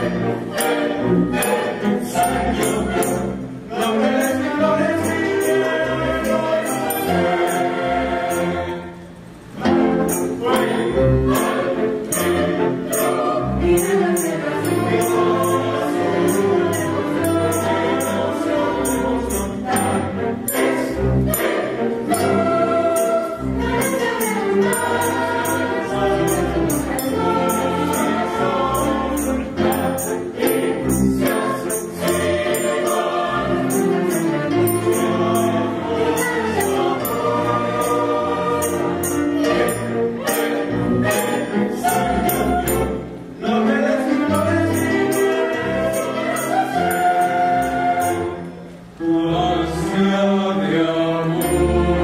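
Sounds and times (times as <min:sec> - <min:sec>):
light high percussion strokes: 0:00.0 - 0:43.3, 0:44.3 - 0:48.7
choir singing in harmony: 0:00.0 - 0:52.0
string orchestra: 0:00.0 - 0:52.0.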